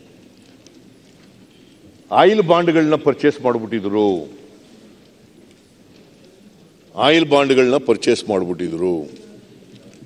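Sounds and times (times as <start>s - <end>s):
faint low background noise: 0.0s - 10.0s.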